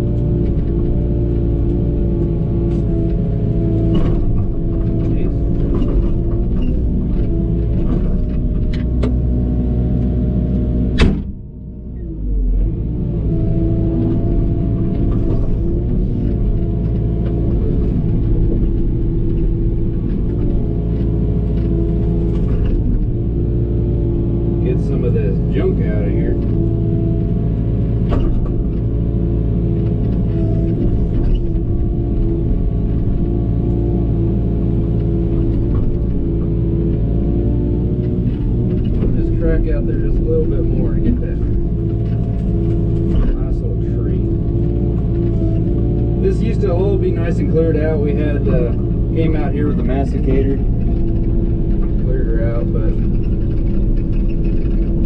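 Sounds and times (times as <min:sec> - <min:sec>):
excavator diesel engine: 0:00.0 - 0:55.0.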